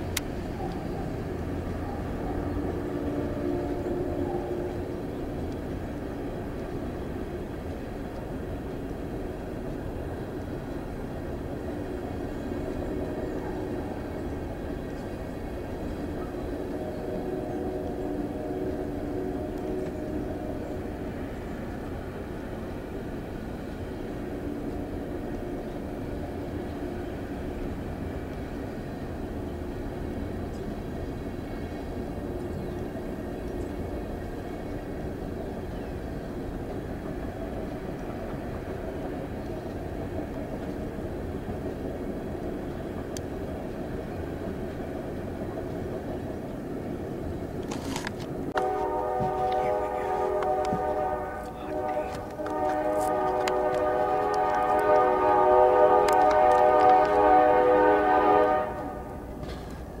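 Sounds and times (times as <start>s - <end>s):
train cars rumbling past: 0.0s - 60.0s
locomotive air horn blasts: 2.5s - 4.8s, 16.7s - 20.8s, 48.6s - 59.2s.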